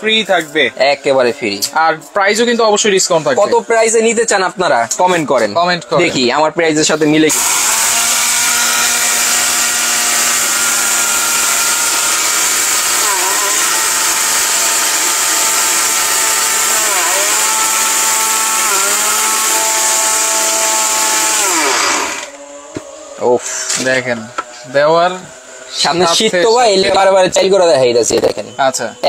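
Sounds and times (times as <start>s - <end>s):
mixer grinder motor whining: 7.3s - 22.6s.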